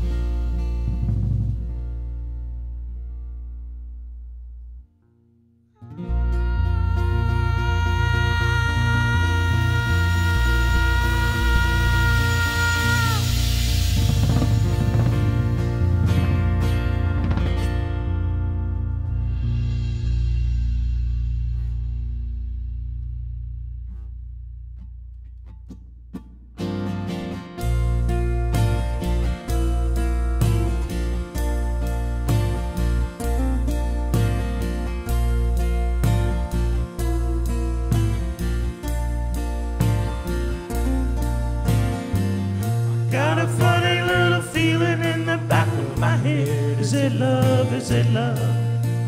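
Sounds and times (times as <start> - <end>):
acoustic guitars strumming: 0.0 - 3.8, 5.0 - 22.0, 23.8 - 49.0
bass guitar: 0.0 - 49.0
long held high note bending: 5.8 - 20.0
live folk band playing: 5.9 - 19.6, 26.6 - 49.0.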